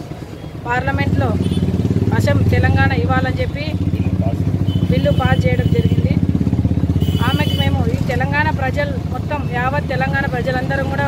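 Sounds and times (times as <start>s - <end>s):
engine idling: 0.0s - 11.0s
woman speaking: 0.7s - 1.5s, 2.1s - 3.9s, 4.9s - 6.2s, 7.2s - 11.0s.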